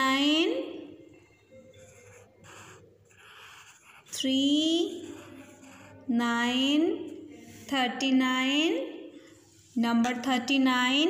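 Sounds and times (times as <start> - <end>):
pencil scratching on paper: 1.5 - 8.2.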